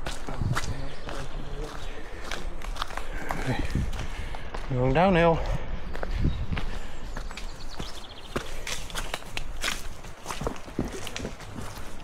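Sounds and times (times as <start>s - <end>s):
running footsteps on muddy trail: 0.0s - 12.0s.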